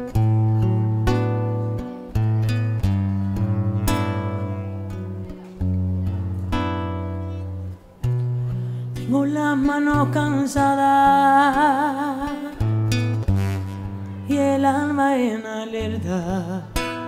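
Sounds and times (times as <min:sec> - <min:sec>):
acoustic guitar strummed chords: 0:00.0 - 0:17.0.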